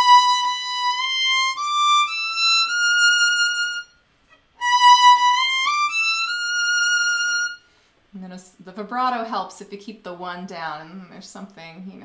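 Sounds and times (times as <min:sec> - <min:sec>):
solo violin played slowly: 0:00.0 - 0:04.0, 0:04.6 - 0:07.7.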